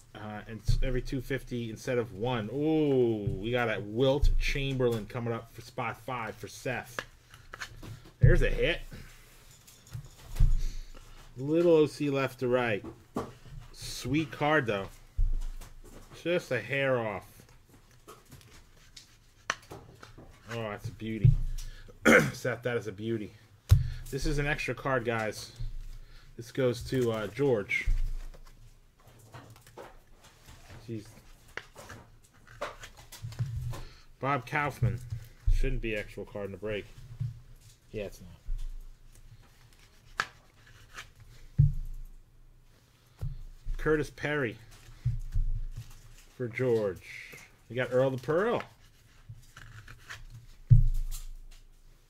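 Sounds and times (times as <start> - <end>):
plastic sleeve rustling: 23.8 - 52.0
card scraping plastic: 39.4 - 41.5, 45.8 - 51.3.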